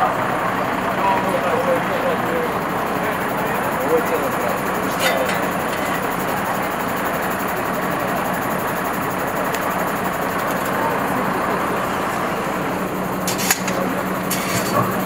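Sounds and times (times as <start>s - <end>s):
city street noise: 0.0s - 15.0s
vehicle engine idling: 0.0s - 15.0s.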